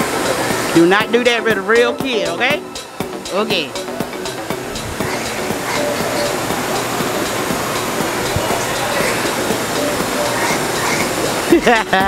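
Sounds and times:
steady rushing noise: 0.0s - 12.0s
faint scattered voices: 0.1s - 12.0s.

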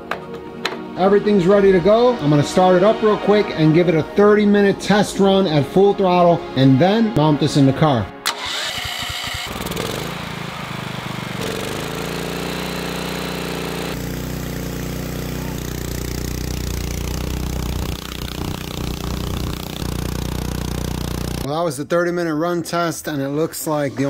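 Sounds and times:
generator engine running: 8.2s - 21.5s.

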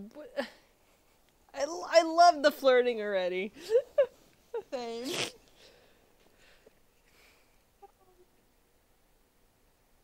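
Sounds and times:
low hiss: 0.0s - 10.0s
faint breathing: 5.5s - 7.7s.

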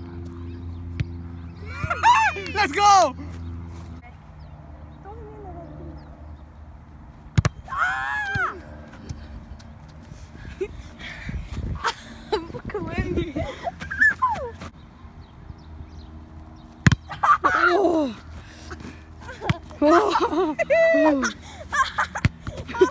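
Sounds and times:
boys yelping and shouting: 1.7s - 3.2s, 7.7s - 8.8s, 17.1s - 18.4s, 19.2s - 21.4s
soccer ball kick thud: 7.3s - 7.7s, 16.8s - 17.1s.

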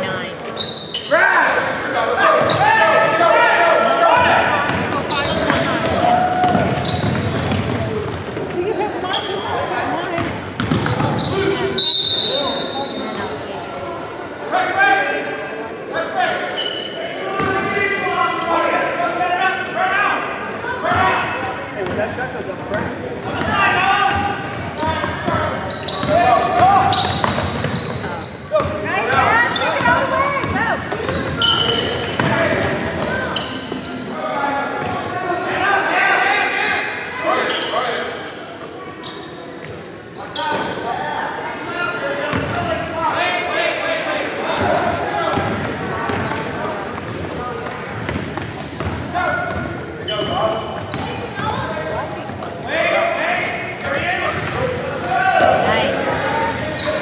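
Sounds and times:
voices shouting: 0.6s - 7.9s, 22.8s - 38.1s.

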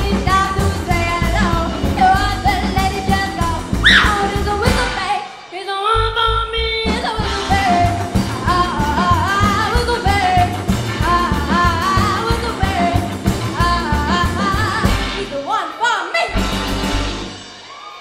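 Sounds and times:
upright bass: 0.0s - 5.1s, 6.0s - 15.3s, 16.3s - 17.3s
woman singing: 0.0s - 16.4s
drums: 0.0s - 18.0s
electric guitar: 7.0s - 15.3s.

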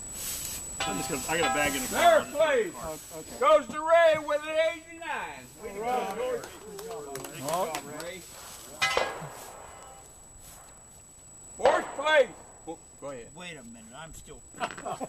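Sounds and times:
sharp clink: 0.8s - 2.0s, 8.7s - 10.8s
men talking: 0.8s - 10.1s, 11.6s - 15.0s.

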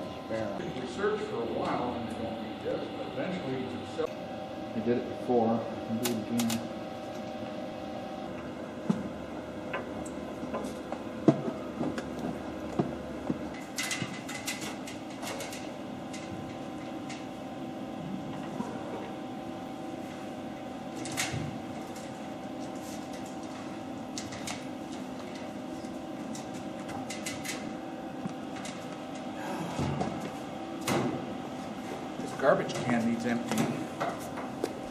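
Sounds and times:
electrical hum: 0.0s - 34.9s.

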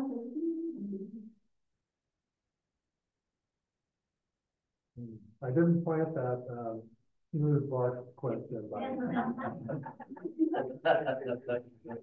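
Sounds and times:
person talking: 5.0s - 6.8s, 7.4s - 12.0s.

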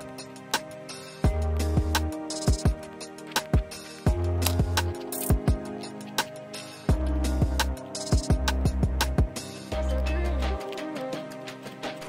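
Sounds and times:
deep kick drums: 1.2s - 2.8s, 3.6s - 5.6s, 6.9s - 10.0s.

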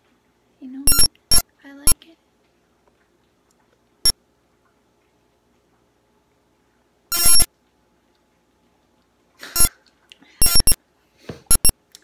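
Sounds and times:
electronic ringtone beeps: 0.9s - 1.4s, 7.1s - 7.5s, 10.4s - 10.8s, 11.5s - 11.7s.

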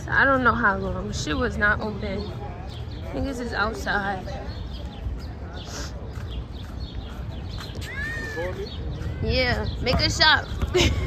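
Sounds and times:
street ambience rumble: 0.0s - 11.0s.

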